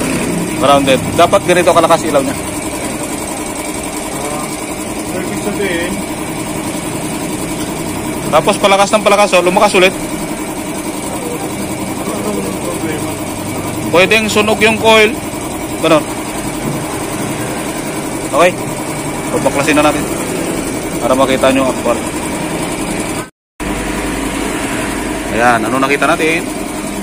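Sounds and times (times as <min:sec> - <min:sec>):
small engine idling: 0:00.0 - 0:27.0.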